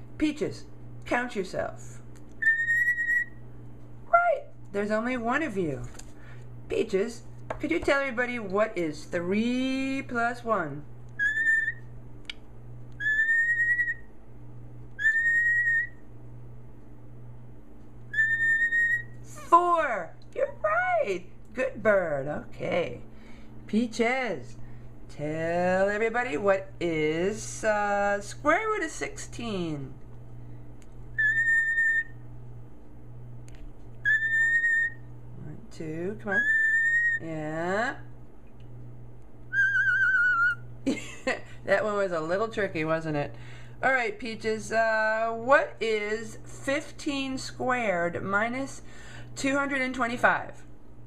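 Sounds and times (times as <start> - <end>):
cockatiel whistling: 2.4 - 3.4, 11.2 - 11.9, 13.0 - 14.1, 15.0 - 16.0, 18.1 - 19.2, 31.2 - 32.2, 34.0 - 35.1, 36.3 - 37.2, 39.5 - 40.6.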